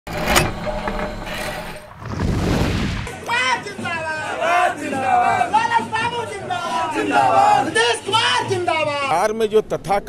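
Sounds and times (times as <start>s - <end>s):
sharp hit: 1.5s - 3.2s.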